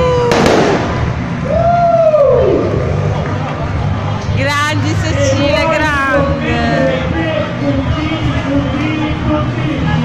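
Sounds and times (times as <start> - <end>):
fireworks crackling: 0.0 - 1.4
crowd murmur: 0.0 - 10.0
fireworks bang: 0.2 - 1.3.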